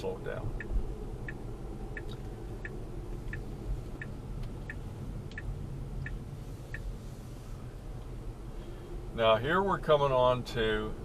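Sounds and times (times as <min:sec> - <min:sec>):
turn signal ticking: 0:00.0 - 0:07.0
road and cabin rumble: 0:00.0 - 0:11.0.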